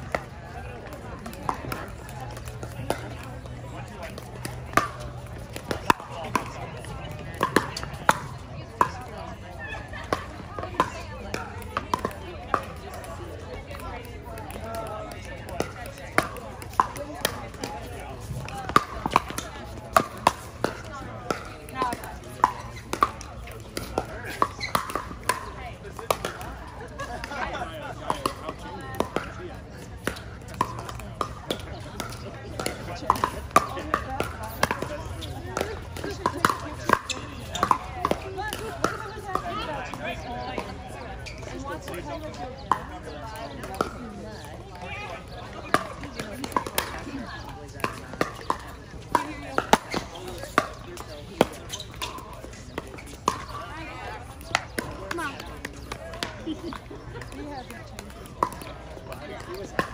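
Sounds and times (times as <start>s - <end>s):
paddles hitting plastic ball: 10.0s - 42.0s, 45.2s - 59.9s.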